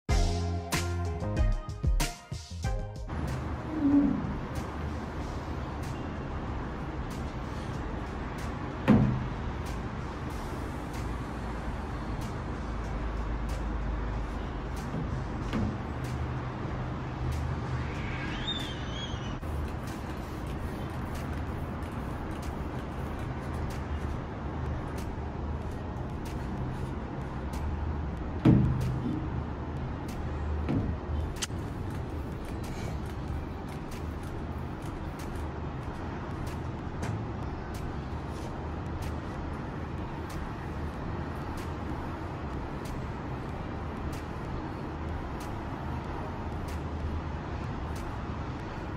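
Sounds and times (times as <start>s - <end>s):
distant road traffic rumble: 3.1s - 48.9s.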